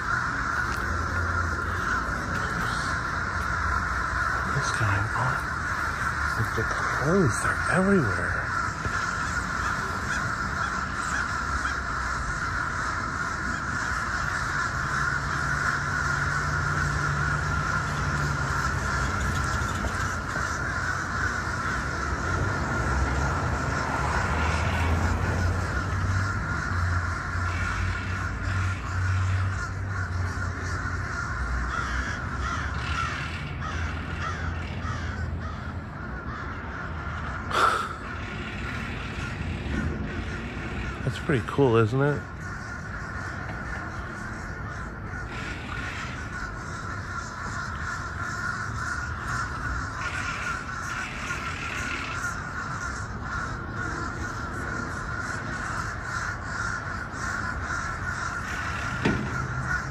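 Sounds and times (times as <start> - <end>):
close loud crow caw: 0.0 - 59.9
crows cawing: 0.0 - 59.9.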